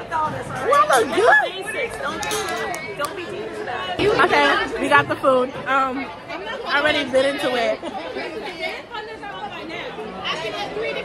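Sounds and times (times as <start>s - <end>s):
diners chattering: 0.0s - 11.0s.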